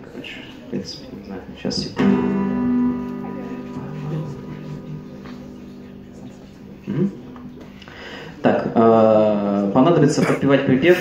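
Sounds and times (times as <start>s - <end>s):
acoustic guitar chord strummed: 2.0s - 8.6s.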